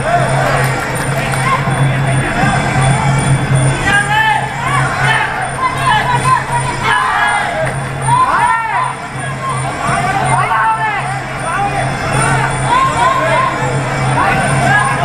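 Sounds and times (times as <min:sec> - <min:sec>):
steady drumming: 0:00.0 - 0:15.0.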